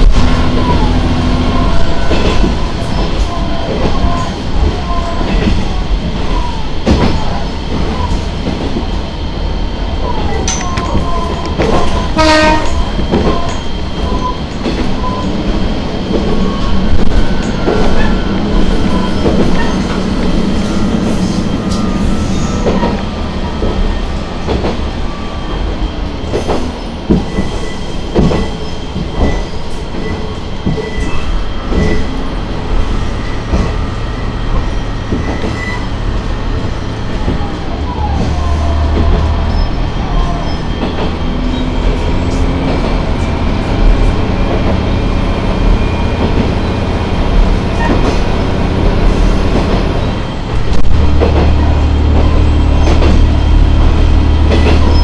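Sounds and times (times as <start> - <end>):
diesel railcar running drone: 0.0 - 55.0
wheels clacking over rail joints: 10.4 - 16.4
train horn blast: 11.9 - 12.9
wheel squeal: 32.8 - 36.0.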